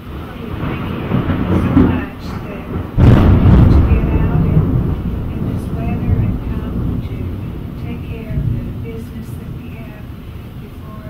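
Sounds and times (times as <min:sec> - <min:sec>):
low rumble of room noise: 0:00.0 - 0:11.0.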